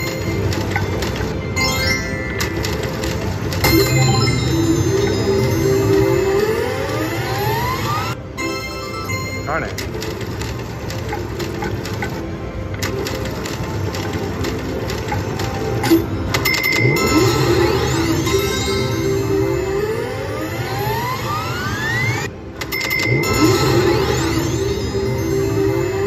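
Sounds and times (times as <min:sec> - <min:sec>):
slot machine reels clicking: 0:00.0 - 0:26.0
rising electronic tone: 0:03.6 - 0:08.2, 0:16.8 - 0:22.3.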